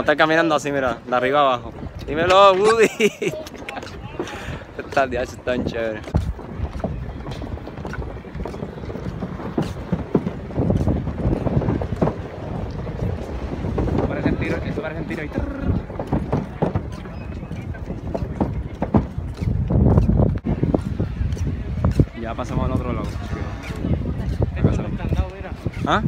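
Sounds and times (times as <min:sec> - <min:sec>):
voices nearby: 0:00.0 - 0:26.0
wind on microphone: 0:00.0 - 0:26.0
footsteps on pontoon deck: 0:01.8 - 0:14.2, 0:15.0 - 0:25.8.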